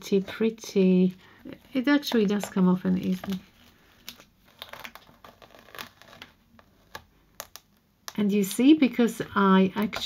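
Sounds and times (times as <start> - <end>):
film peeling with crinkles: 1.2 - 7.8.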